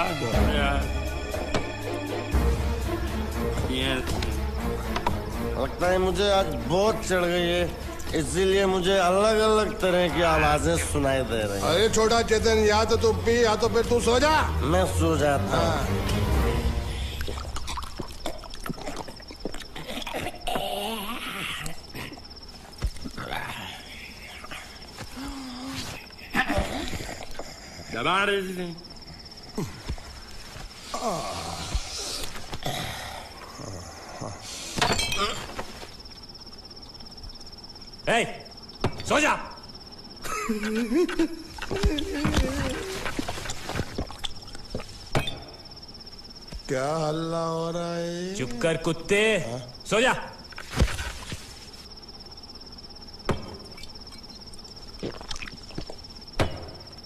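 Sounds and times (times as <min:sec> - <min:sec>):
crickets chirping: 0:00.0 - 0:57.0.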